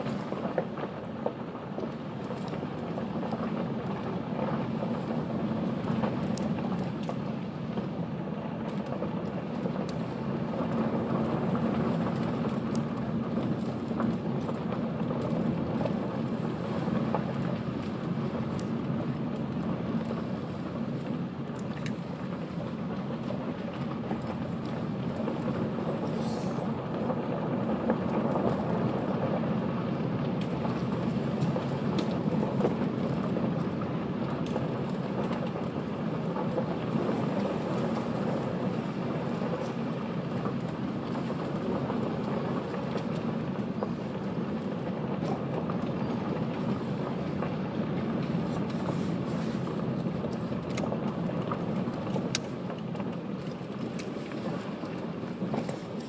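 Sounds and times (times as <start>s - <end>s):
car tyres rolling over gravel: 0.0s - 56.0s.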